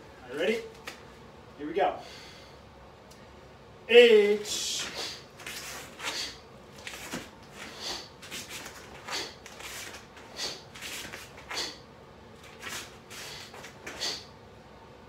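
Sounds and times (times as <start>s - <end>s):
sharp breaths: 2.0s - 2.7s, 4.5s - 11.9s, 12.6s - 14.4s.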